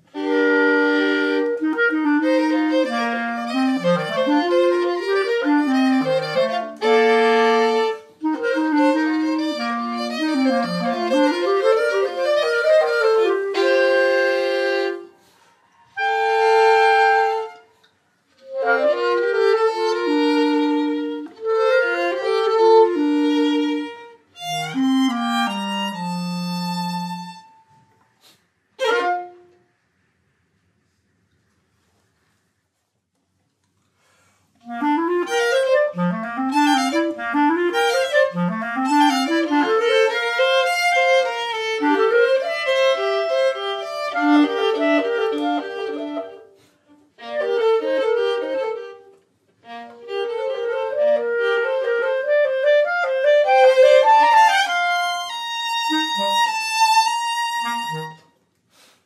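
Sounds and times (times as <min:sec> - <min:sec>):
clarinet: 0:00.0 - 0:29.9, 0:33.7 - 0:59.0
violin: 0:34.6 - 0:58.4.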